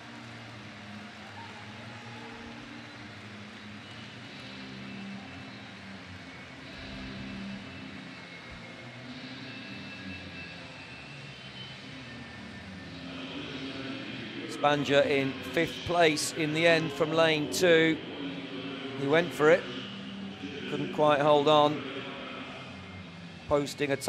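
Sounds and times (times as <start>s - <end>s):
indoor crowd hubbub: 0.0s - 24.0s.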